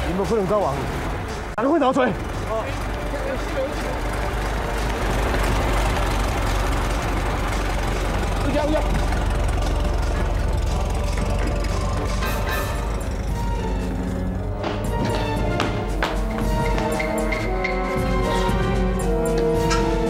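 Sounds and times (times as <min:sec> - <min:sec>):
truck engine rumbling: 0:00.0 - 0:20.0.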